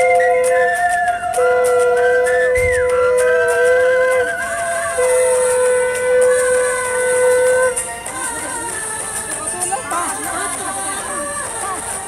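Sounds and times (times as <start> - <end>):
higher warbling note: 0.0 - 7.8
conch shells blown: 0.0 - 8.7.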